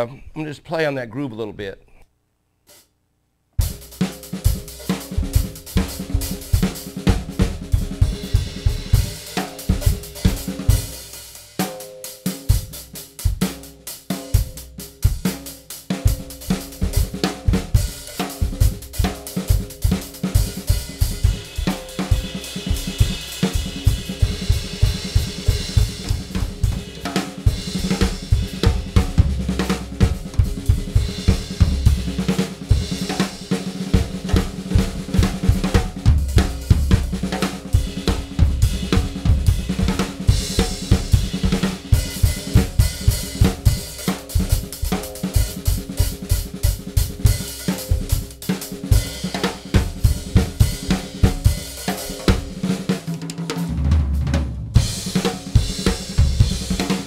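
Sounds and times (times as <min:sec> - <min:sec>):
two drum kits playing: 0:03.6 - 0:57.0.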